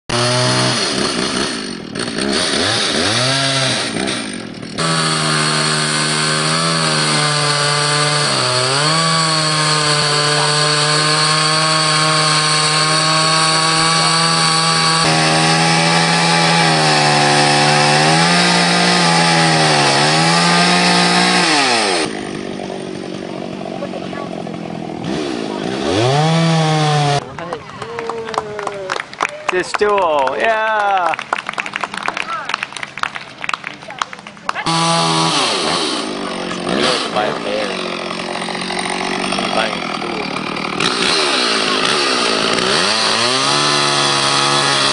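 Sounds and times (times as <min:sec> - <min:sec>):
chainsaw cutting log: 0:00.1 - 0:27.5, 0:33.5 - 0:44.9.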